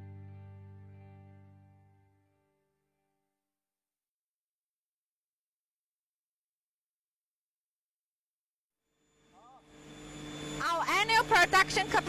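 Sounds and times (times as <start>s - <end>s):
woman speaking: 10.6s - 12.0s.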